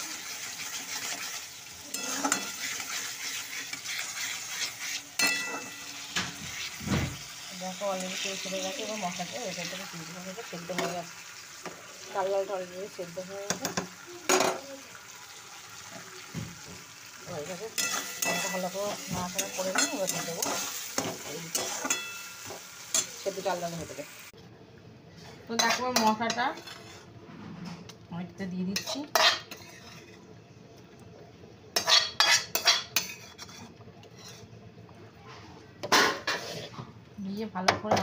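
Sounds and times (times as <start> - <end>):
pot bubbling: 0.0 - 37.6
metal spoon scraping a metal pan: 0.1 - 6.8, 17.7 - 23.2, 25.6 - 27.8, 28.7 - 30.3, 31.8 - 34.6, 35.8 - 36.8.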